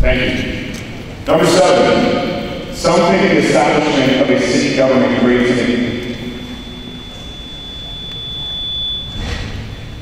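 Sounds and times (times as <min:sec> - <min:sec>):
microphone feedback whistle: 0:03.8 - 0:10.0.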